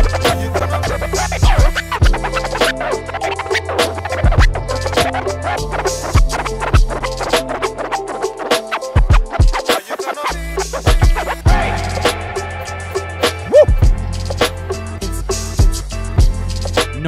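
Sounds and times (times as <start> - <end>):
beat with deep bass: 1.1 - 2.2, 13.5 - 14.2, 15.6 - 16.8
vinyl record scratching: 13.5 - 13.7.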